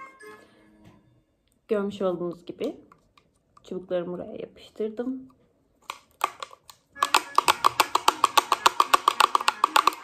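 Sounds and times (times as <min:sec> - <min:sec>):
pellet drum rattling: 0:07.0 - 0:10.0.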